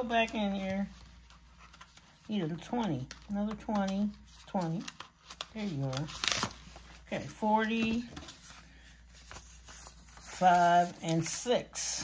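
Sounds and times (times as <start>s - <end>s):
paper bills rustling: 0.0s - 11.5s.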